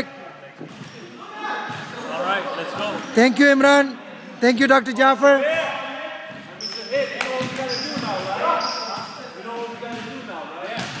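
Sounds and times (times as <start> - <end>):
chatter of many voices: 0.0 - 11.0
basketball bouncing in gym: 7.3 - 8.4, 9.9 - 11.0.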